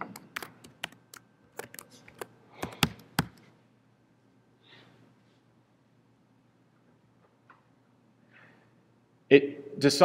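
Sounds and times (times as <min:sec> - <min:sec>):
typing on computer keyboard: 0:00.0 - 0:03.4.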